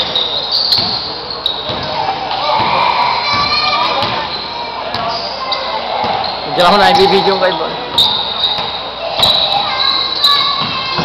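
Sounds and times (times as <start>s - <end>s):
basketball bouncing indoors: 0.0s - 5.1s, 7.9s - 11.0s
sneakers squeaking on floor: 0.0s - 11.0s.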